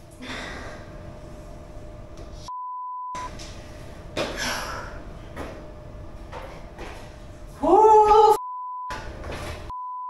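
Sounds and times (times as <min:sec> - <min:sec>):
censor bleep: 0:02.5 - 0:03.3, 0:09.7 - 0:10.0.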